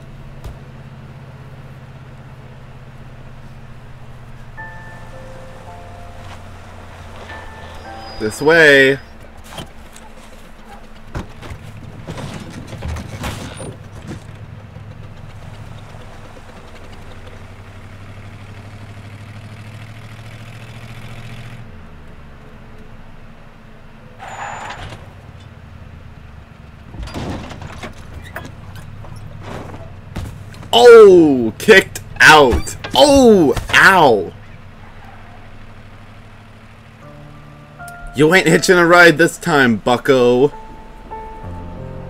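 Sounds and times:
old car engine chugging: 0.0 - 21.7, 23.3 - 42.0.

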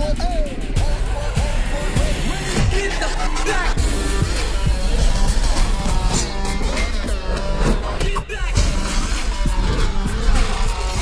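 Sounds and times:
driving action music: 0.0 - 11.0.

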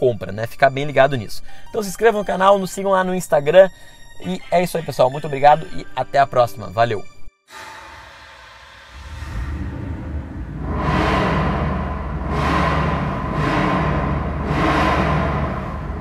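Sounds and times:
music: 0.0 - 16.0
whooshing swells: 7.5 - 16.0
low rumble: 7.8 - 16.0.

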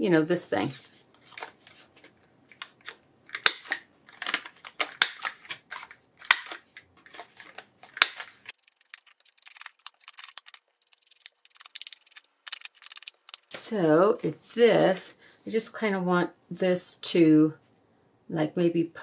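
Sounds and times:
scratchy rubbing on paper: 8.6 - 13.6.

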